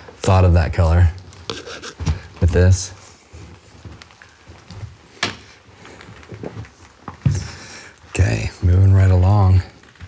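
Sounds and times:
footsteps on indoor floor: 0:03.3 - 0:07.6.

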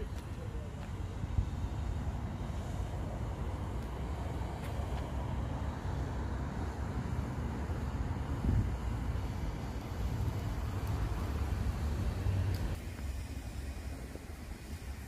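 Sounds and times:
low outdoor ambient rumble: 0:00.0 - 0:15.0.

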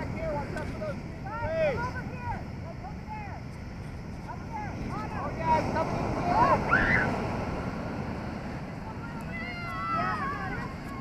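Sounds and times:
ocean surf: 0:00.0 - 0:11.0
wind on microphone: 0:00.0 - 0:11.0
voices calling out: 0:04.4 - 0:11.0.

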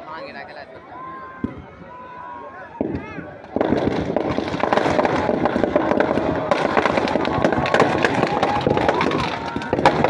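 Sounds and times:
firecrackers crackling: 0:02.8 - 0:10.0.

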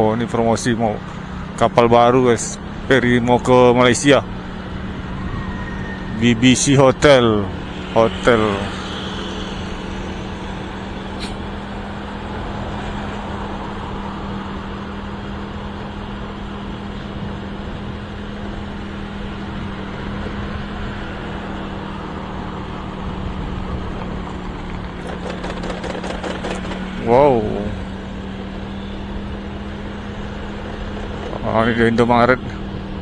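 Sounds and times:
motorcycle engine hum: 0:00.0 - 0:33.0
wind and road noise: 0:00.0 - 0:33.0.

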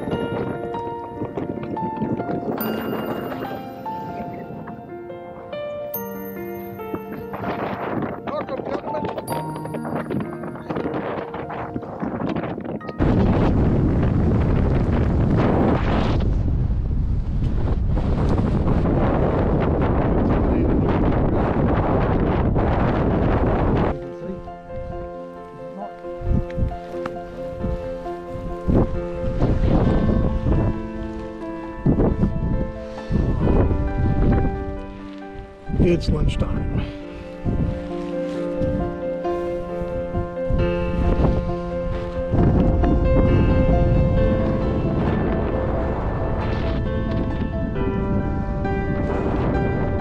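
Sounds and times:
background music: 0:00.0 - 0:16.2, 0:22.3 - 0:50.0
wind noise on microphone: 0:00.0 - 0:50.0.

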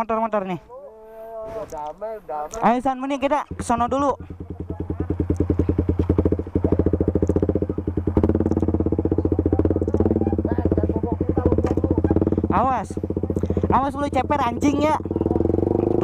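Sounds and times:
motorcycle engine idling: 0:02.6 - 0:16.0.

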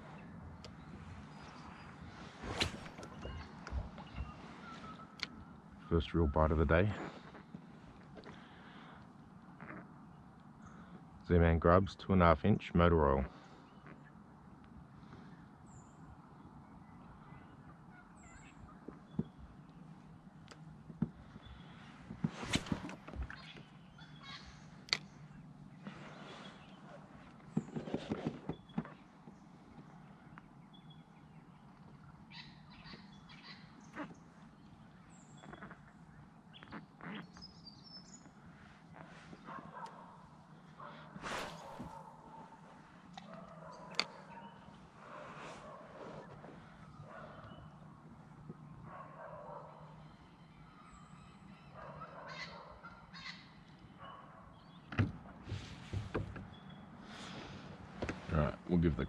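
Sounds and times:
birds calling: 0:00.0 - 0:59.0.

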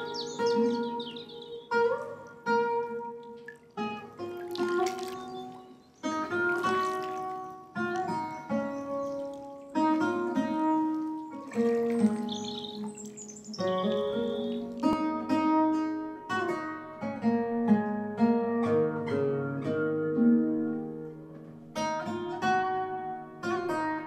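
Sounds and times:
plucked acoustic guitar notes: 0:00.0 - 0:24.0.

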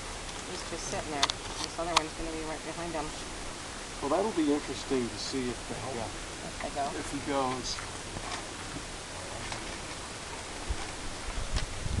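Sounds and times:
wind noise on microphone: 0:07.8 - 0:12.0.

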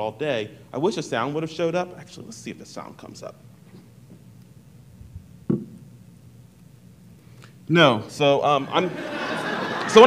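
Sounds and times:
steady low hum: 0:00.0 - 0:10.0
short knock: 0:05.5 - 0:05.8.

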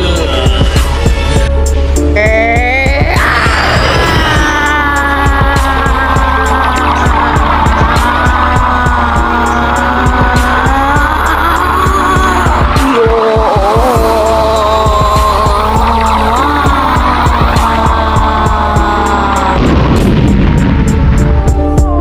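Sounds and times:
dramatic soundtrack music: 0:00.0 - 0:22.0
heavy low rumble: 0:00.0 - 0:22.0.

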